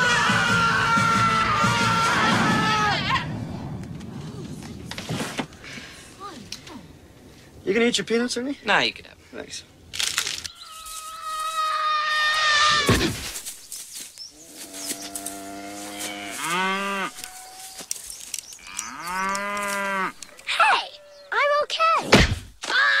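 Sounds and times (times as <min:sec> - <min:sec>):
long falling wail: 0:00.0 - 0:03.7
cow mooing: 0:18.7 - 0:20.2.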